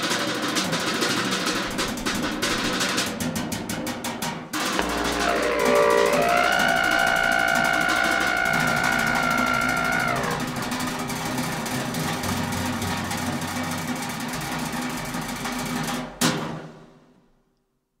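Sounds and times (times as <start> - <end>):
bass and drums playing: 4.6 - 16.2
held wind instrument note: 4.7 - 11.0
sharp percussion strike: 4.8 - 7.8.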